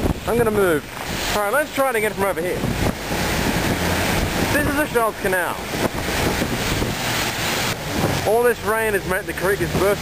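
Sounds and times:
gusty wind buffeting microphone: 0:00.0 - 0:10.0
heavy rain hiss: 0:00.0 - 0:10.0.

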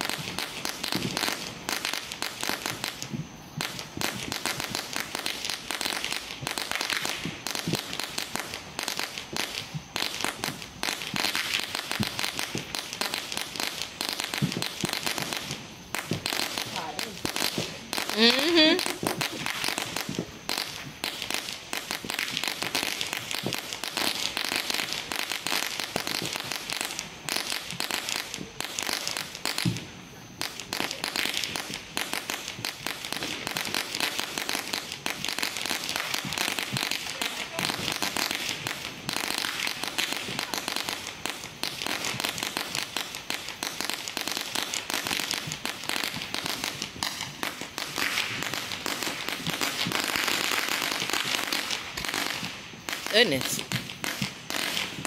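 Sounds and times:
fireworks crackling: 0:00.0 - 0:55.0.

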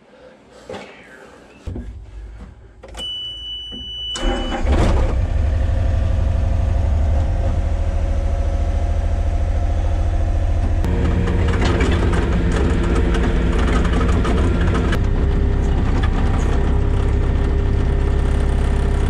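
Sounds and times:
high steady beep: 0:03.0 - 0:04.5
diesel engine starting and idling: 0:04.0 - 0:19.0
higher hum: 0:05.9 - 0:15.6.

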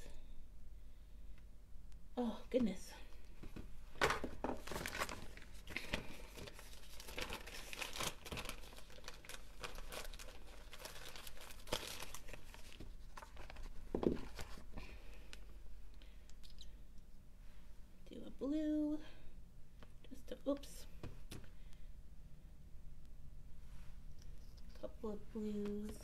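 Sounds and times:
plastic glove crinkling: 0:04.0 - 0:15.5.

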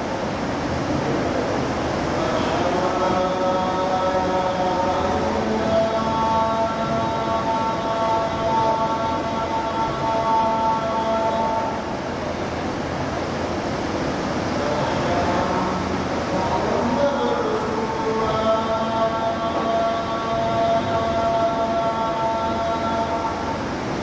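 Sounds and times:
person chanting a long note: 0:02.2 - 0:11.9, 0:14.6 - 0:23.6.

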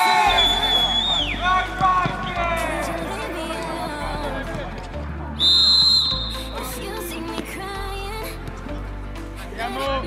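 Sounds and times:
referee's whistle blast: 0:00.0 - 0:01.5, 0:05.4 - 0:06.4
background music: 0:00.0 - 0:10.0.

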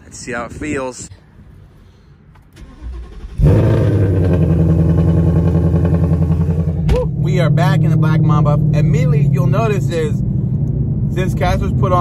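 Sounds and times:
car engine starting and idling: 0:02.3 - 0:12.0.

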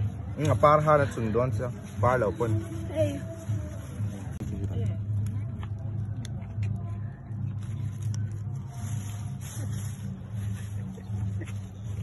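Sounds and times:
lettuce leaves rustling: 0:07.4 - 0:12.0.

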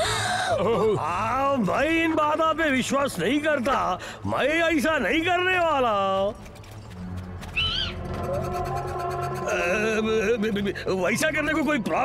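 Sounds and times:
high bird-like call: 0:07.6 - 0:09.1.

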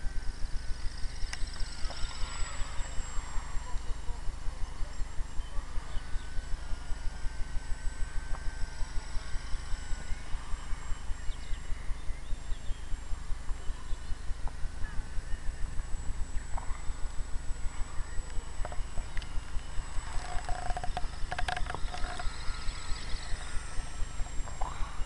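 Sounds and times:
low rhythmic pulsing rumble: 0:00.0 - 0:25.0
faint bird chirps: 0:00.5 - 0:25.0.

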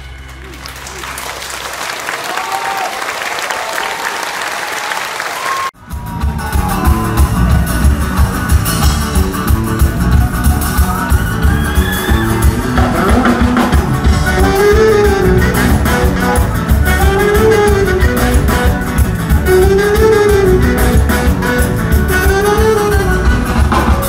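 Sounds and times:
audience applause: 0:00.0 - 0:06.7
live rock band playing: 0:05.8 - 0:24.0.

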